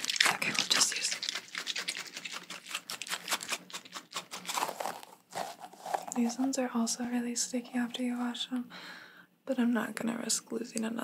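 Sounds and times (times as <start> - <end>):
squishy balls crackling and clicking: 0.0 - 6.4.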